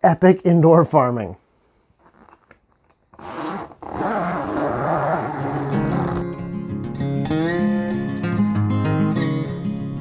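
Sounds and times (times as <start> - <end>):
fabric zipper pulled open: 3.1 - 6.3
strummed acoustic guitar music: 5.7 - 10.0.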